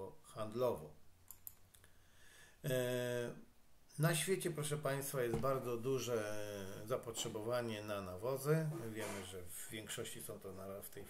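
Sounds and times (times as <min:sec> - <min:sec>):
computer mouse clicks: 0:01.3 - 0:01.9
man's drawn-out hesitation sound: 0:08.2 - 0:09.5.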